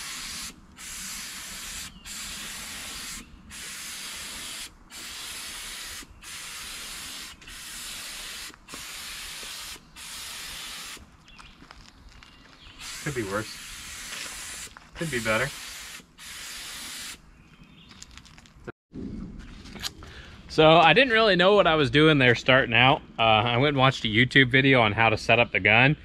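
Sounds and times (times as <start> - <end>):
spray gun hissing: 0.0 - 11.0, 12.8 - 17.2.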